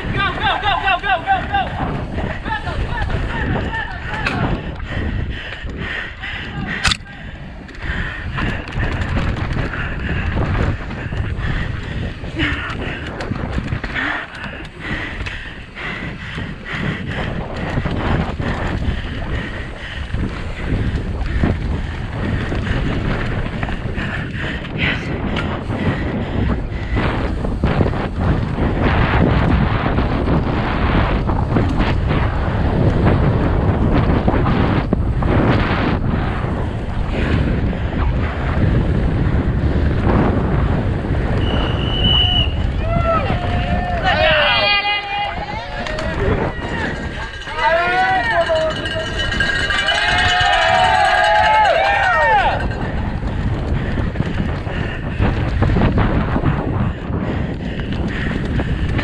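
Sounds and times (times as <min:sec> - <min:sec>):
bike rattling and knocking: 0:00.0 - 0:41.8, 0:42.6 - 0:59.0
wind buffeting microphone: 0:00.0 - 0:59.0.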